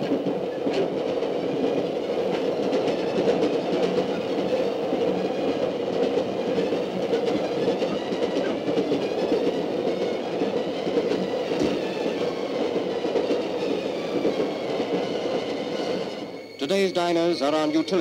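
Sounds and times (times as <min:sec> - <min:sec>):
train wheels rumbling on track: 0:00.0 - 0:18.0.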